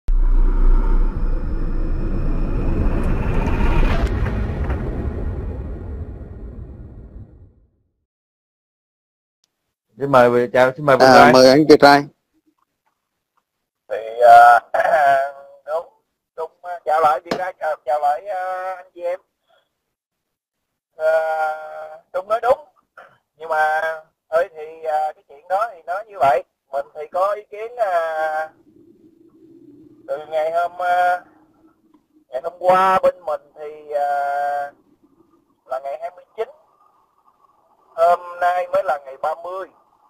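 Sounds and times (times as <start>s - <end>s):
impact hit: 0.1s - 7.5s
deep steady rumble: 0.1s - 7.7s, 28.6s - 30.2s.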